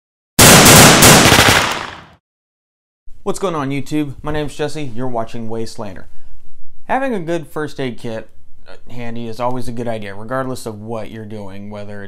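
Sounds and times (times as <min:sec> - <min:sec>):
gunfire-like burst: 0:00.4 - 0:02.2.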